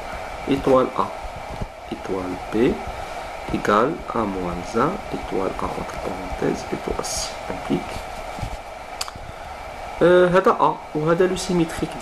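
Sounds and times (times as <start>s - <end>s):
background hiss and hum: 0.0s - 12.0s.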